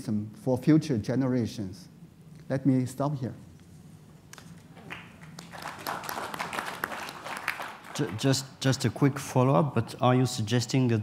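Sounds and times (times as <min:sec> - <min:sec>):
audience applauding: 0:04.8 - 0:08.5.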